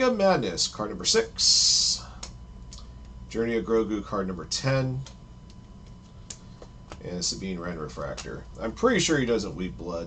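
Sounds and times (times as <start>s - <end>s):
faint steady hum: 0.0s - 10.0s
cards flipping ticks: 5.0s - 7.1s.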